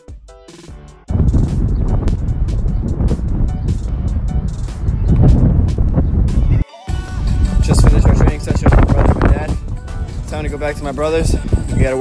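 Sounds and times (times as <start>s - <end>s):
background music: 0.0s - 12.0s
wind buffeting microphone: 1.1s - 6.6s, 7.2s - 12.0s.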